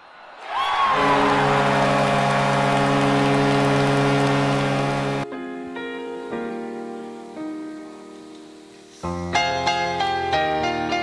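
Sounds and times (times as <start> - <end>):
crowd cheering: 0.0 - 5.2
hockey goal horn: 0.8 - 5.3.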